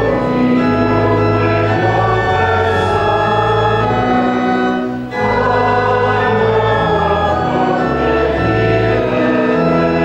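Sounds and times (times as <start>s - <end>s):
congregation singing a hymn: 0.0s - 10.0s
organ accompaniment: 0.0s - 10.0s.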